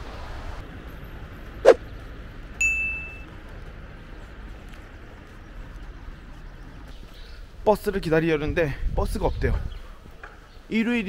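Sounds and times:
short bright ding: 2.6 - 3.2.

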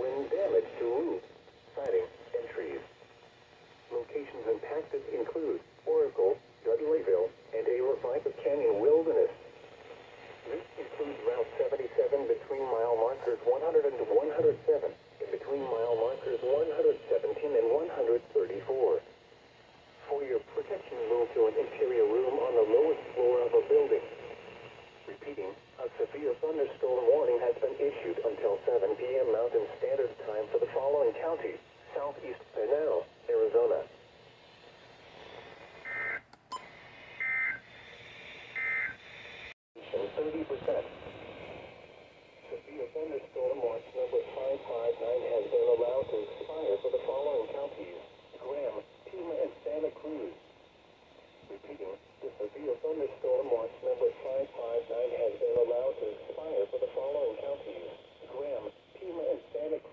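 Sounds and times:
broadcast voice from radio speaker: 0.0 - 36.1, 39.8 - 41.8, 42.4 - 59.9.

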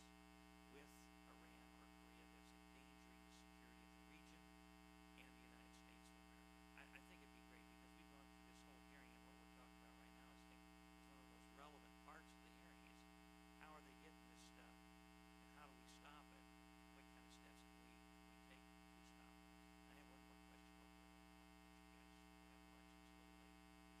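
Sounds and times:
electrical mains hum: 0.0 - 24.0
faint distant voices: 5.1 - 14.7, 15.5 - 16.4.

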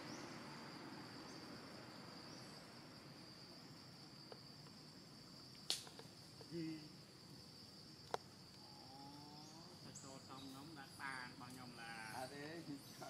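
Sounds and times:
faint forest background: 0.0 - 13.0
high-pitched insect drone: 0.0 - 13.0.

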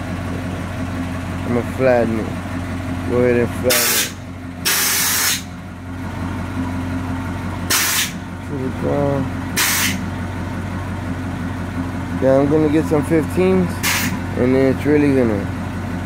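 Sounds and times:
air hissing from suspension airbags: 3.8 - 5.5, 7.7 - 8.2, 9.6 - 10.0, 13.8 - 14.2.

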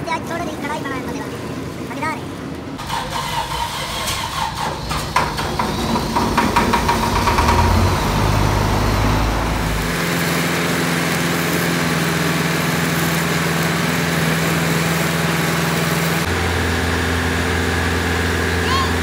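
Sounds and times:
welding arc buzzing and crackling: 2.8 - 19.0.

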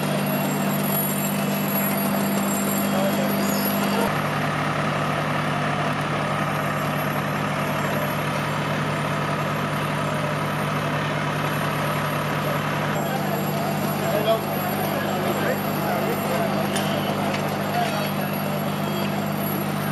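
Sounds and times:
diesel engines running: 0.0 - 19.9
outdoor noise: 0.0 - 19.9.

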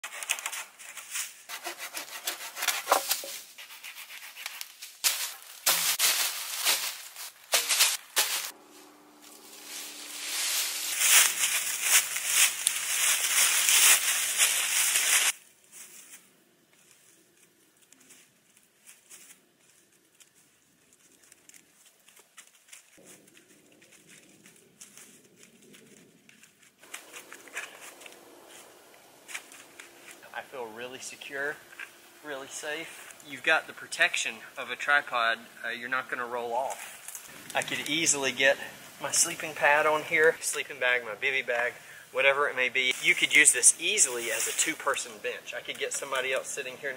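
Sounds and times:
hand saw cutting wood: 1.5 - 4.7
rustling leaf litter: 2.9 - 33.8, 36.5 - 46.9.

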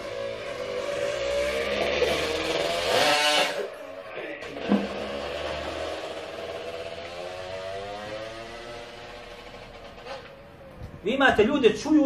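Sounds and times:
motor vehicle passing by: 0.0 - 10.5.

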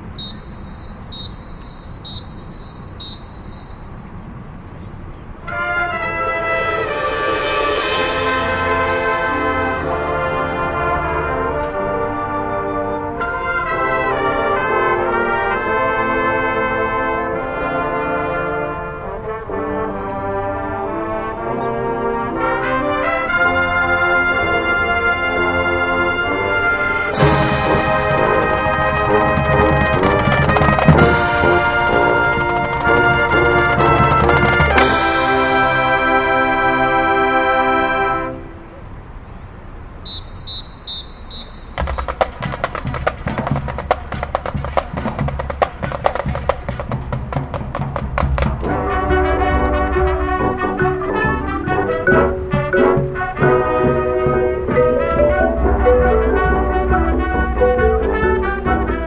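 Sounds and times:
brass section chords: 5.4 - 38.7, 46.8 - 59.0
heavy drums: 6.4 - 11.0, 27.0 - 36.6, 41.6 - 58.4
cymbal crash: 6.5 - 10.8, 27.1 - 28.7.

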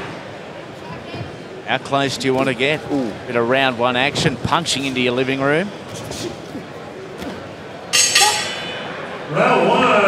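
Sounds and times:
hall background noise: 0.0 - 10.0
loud voices: 7.9 - 10.0.

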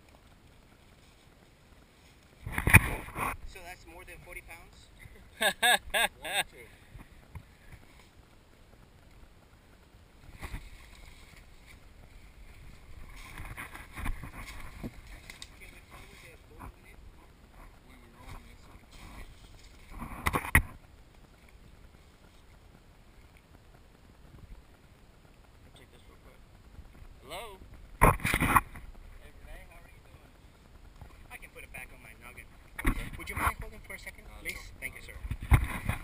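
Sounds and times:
rustling dry leaves and brush: 0.0 - 4.0, 6.7 - 36.0
loud crackle: 7.0 - 36.0.

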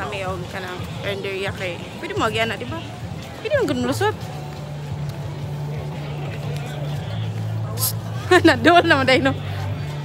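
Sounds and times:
faint murmuring voices: 0.0 - 10.0.

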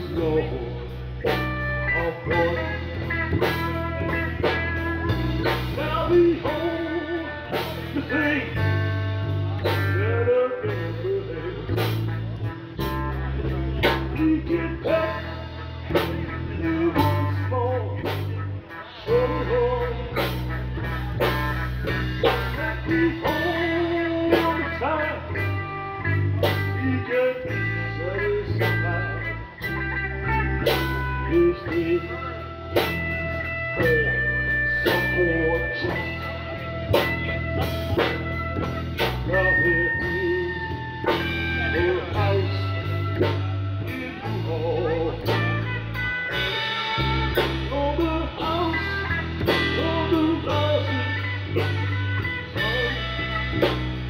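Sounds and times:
drum kit beat: 0.0 - 54.0
electric bass: 0.0 - 54.0
electric guitar melody: 0.0 - 54.0.

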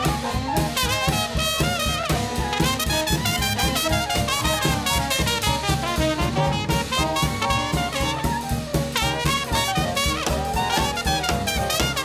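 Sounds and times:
drums keeping a beat: 0.0 - 12.0
piano: 0.0 - 12.0
trombone: 0.0 - 12.0
trumpet melody: 0.0 - 12.0
upright bass: 0.0 - 12.0.

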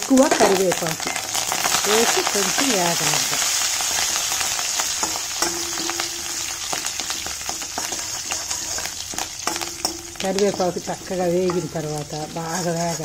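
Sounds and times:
spices sizzling in hot oil: 0.0 - 13.0
steel ladle scraping pan: 3.4 - 13.0.

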